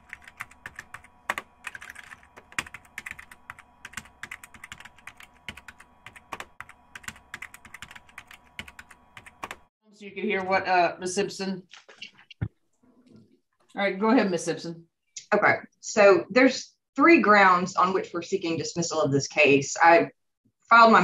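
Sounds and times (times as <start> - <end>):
faint steady hum: 0.0 - 11.5.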